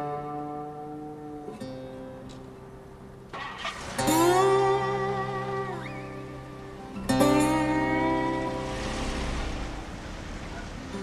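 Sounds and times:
slow slide guitar music: 0.0s - 11.0s
guitar string scrape: 3.3s - 6.1s.

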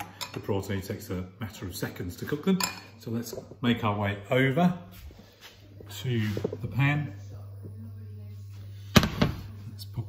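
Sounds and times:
steady low hum: 2.9s - 10.0s.

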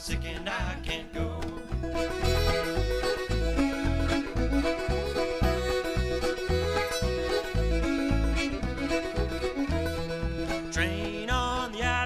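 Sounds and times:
clawhammer banjo: 0.0s - 12.0s
fiddle: 0.0s - 12.0s
upright bass plucking: 0.0s - 12.0s
button accordion: 2.0s - 10.8s.

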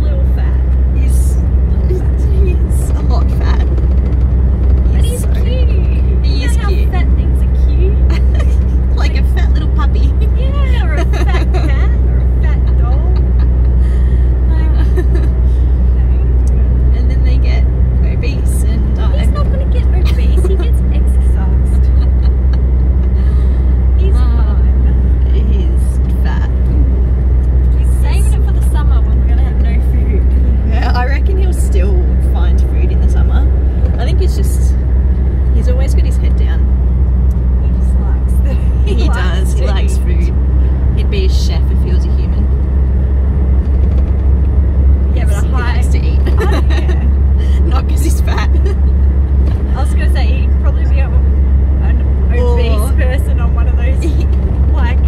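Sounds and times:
women talking and laughing: 0.0s - 4.2s, 4.8s - 26.9s, 27.6s - 34.8s, 37.6s - 42.4s, 45.1s - 49.0s, 49.6s - 55.0s
car cabin road and engine rumble: 0.0s - 55.0s.

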